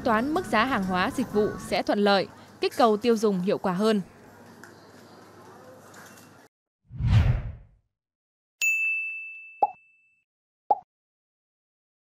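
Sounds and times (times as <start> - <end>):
high chime ding: 8.6 - 10.2.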